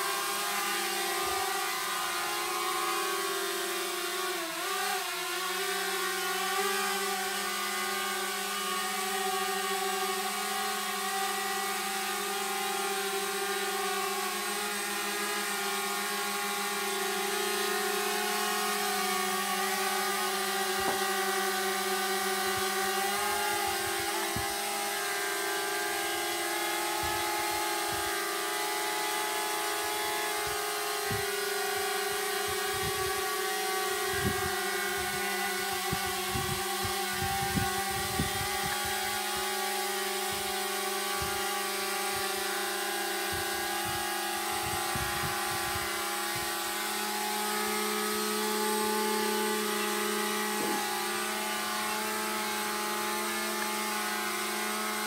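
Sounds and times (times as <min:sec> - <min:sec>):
drone propellers whining: 0:00.0 - 0:55.0.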